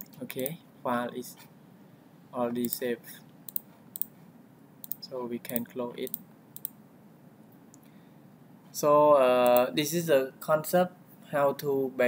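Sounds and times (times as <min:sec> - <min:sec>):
computer mouse clicking: 0:03.5 - 0:04.1, 0:04.8 - 0:06.8.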